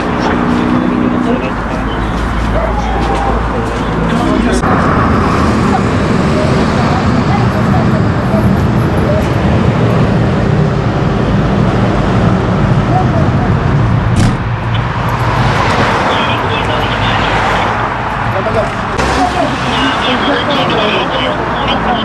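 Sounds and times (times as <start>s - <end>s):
passing vehicle rush: 0.0s - 22.0s
road traffic noise: 0.0s - 22.0s.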